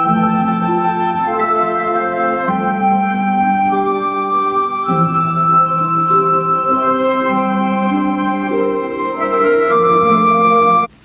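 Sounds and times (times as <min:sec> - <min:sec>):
instrumental music with held notes: 0:00.0 - 0:11.0.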